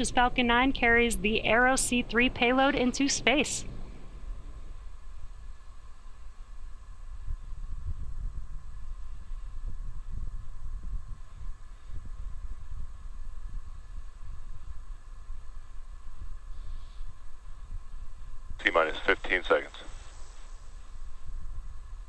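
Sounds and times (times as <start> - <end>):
faint steady high tones: 0.0 - 4.2, 18.6 - 21.3
low gusty rumble: 0.0 - 22.0.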